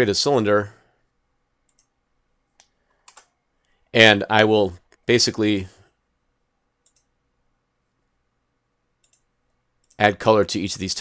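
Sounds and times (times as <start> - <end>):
faint computer clicks: 2.6 - 3.8, 6.8 - 7.1, 9.0 - 10.1.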